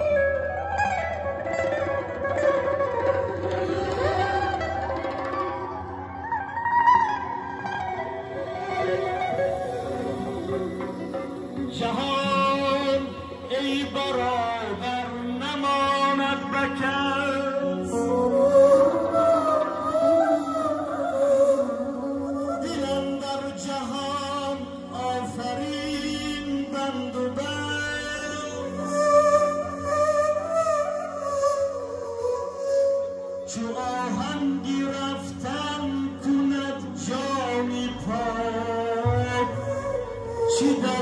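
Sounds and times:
electric guitar melody: 0.0 - 41.0
keyboard: 0.0 - 41.0
plucked string accompaniment: 0.0 - 41.0
man singing into a microphone: 9.0 - 41.0.

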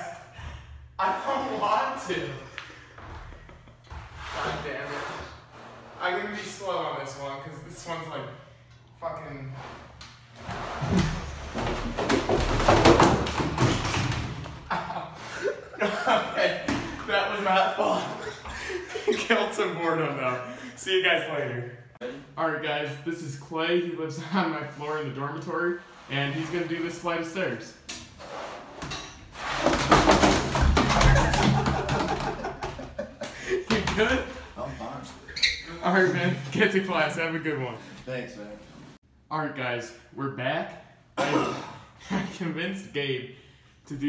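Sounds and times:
basket clattering down stairs: 10.5 - 14.7, 28.8 - 33.0.

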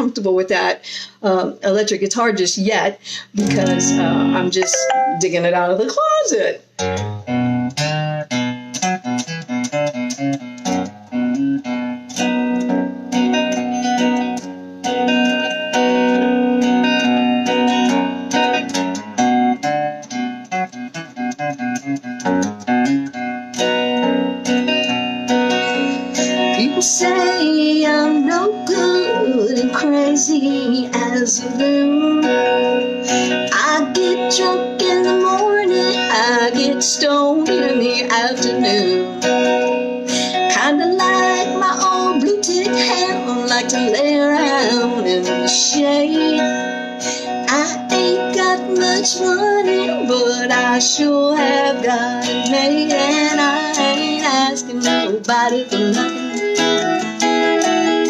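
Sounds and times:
electric guitar playing: 3.4 - 5.5, 6.8 - 58.0.

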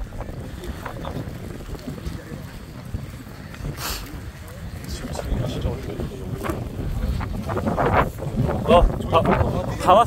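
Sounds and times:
people talking: 0.0 - 10.0
wind rumbling on microphone: 0.0 - 10.0.

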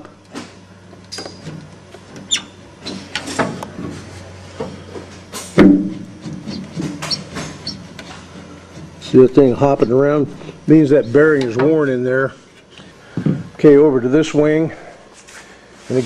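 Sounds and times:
metal knocks and clunks: 5.6 - 7.6.

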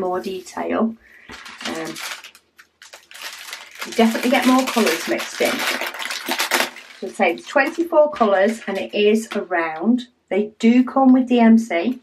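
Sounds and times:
plastic packets crinkling: 1.2 - 9.4.

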